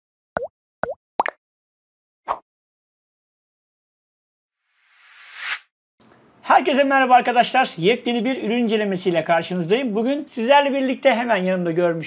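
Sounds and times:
bubbly plop sound effects: 0.4s - 1.4s.

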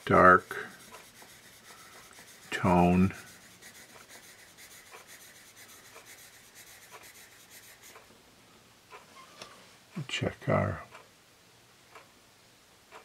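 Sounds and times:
pencil scratching on paper: 0.2s - 8.1s.

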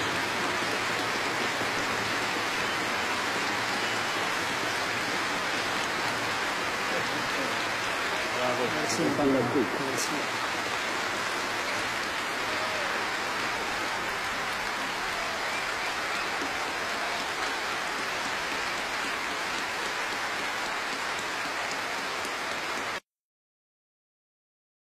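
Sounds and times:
large audience applauding: 0.0s - 23.0s.

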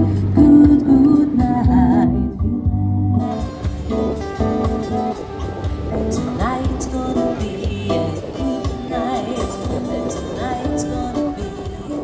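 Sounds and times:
low bass line: 0.0s - 11.2s
acoustic guitars strummed: 0.0s - 12.0s.

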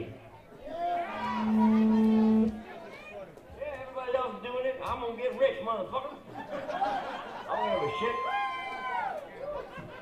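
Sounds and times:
talk and chatter in a bar: 0.0s - 10.0s
held musical note: 1.1s - 2.7s.

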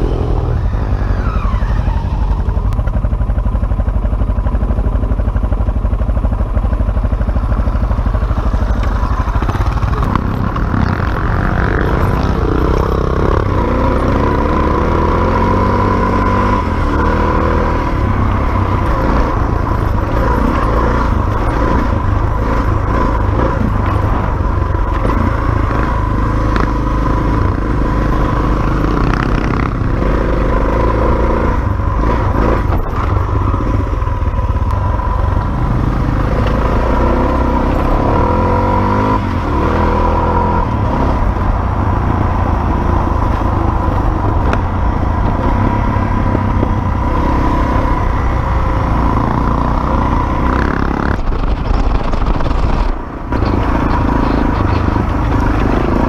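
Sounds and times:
dirt bike engine running hard: 0.0s - 56.0s
wind: 0.0s - 56.0s.

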